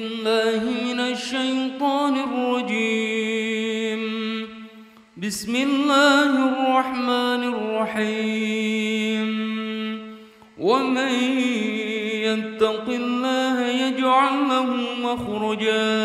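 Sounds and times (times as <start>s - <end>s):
person chanting melodic recitation: 0.0s - 4.6s, 5.2s - 16.0s.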